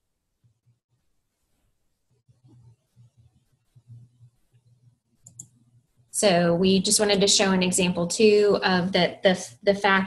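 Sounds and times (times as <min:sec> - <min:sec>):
computer mouse clicks: 0:03.7 - 0:05.7.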